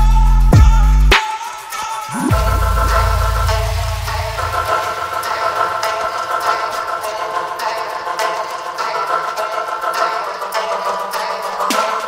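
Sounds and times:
deep sub-bass note: 0:02.1 - 0:06.6
held synth chord: 0:02.1 - 0:07.8.

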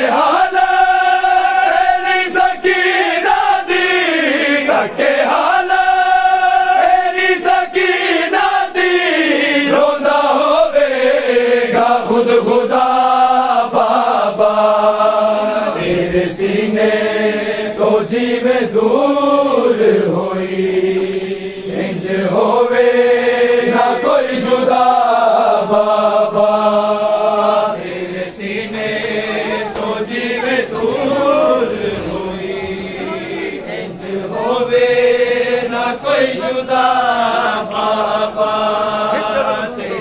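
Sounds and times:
men chanting a lament: 0:00.0 - 0:40.0.

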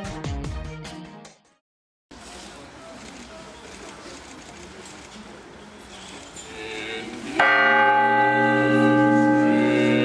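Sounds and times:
church bell ringing: 0:07.4 - 0:10.0.

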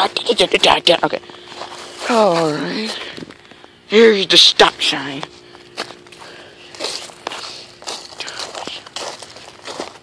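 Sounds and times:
footsteps on leaves and icy ground: 0:00.0 - 0:03.9, 0:04.5 - 0:10.0.

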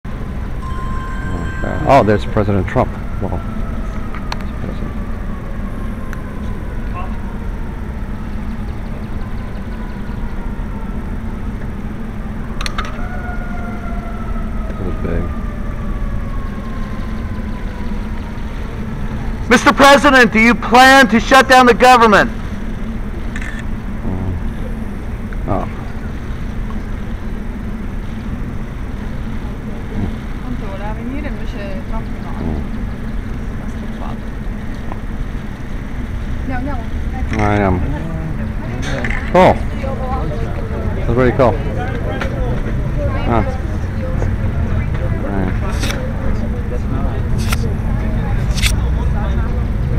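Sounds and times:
faint falling whine: 0:00.1 - 0:07.4
low outdoor rumble: 0:00.1 - 0:49.9
sharp click: 0:47.4 - 0:47.7, 0:48.5 - 0:48.8.

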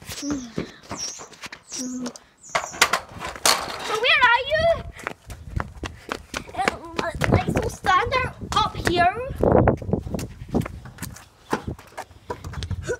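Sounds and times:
child making wordless sounds: 0:00.1 - 0:00.7, 0:01.7 - 0:02.2, 0:03.8 - 0:05.1, 0:06.4 - 0:09.4.

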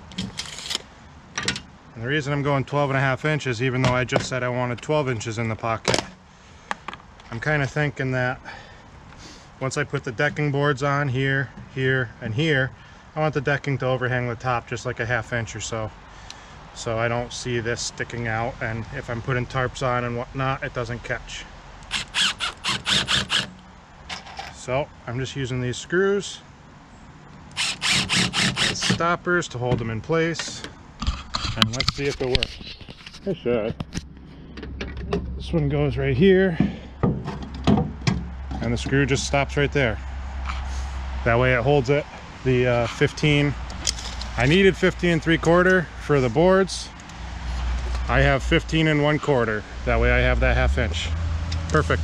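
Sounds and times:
drill driving screw into wood: 0:00.2 - 0:00.8, 0:21.9 - 0:23.6, 0:27.5 - 0:29.0.

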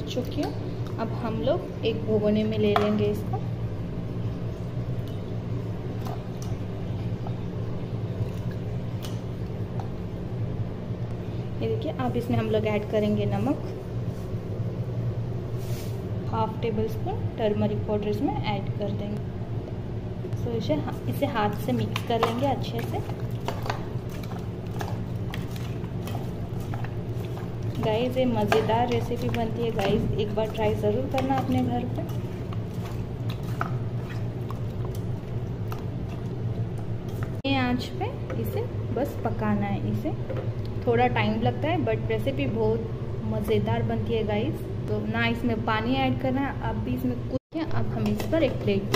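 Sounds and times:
steady low hum: 0:00.0 - 0:48.9
hands mixing wet meat: 0:20.8 - 0:37.5
soft squishes: 0:21.0 - 0:37.4.

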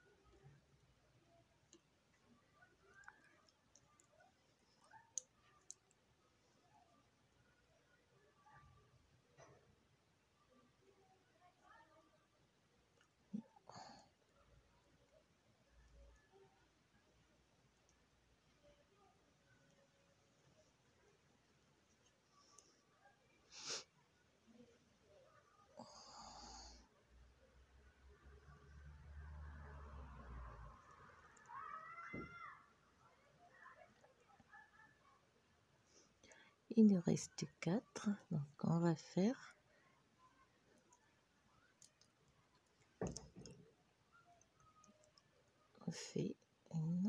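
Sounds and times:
knitting needles tapping: 0:01.6 - 0:06.1, 0:41.6 - 0:43.8.

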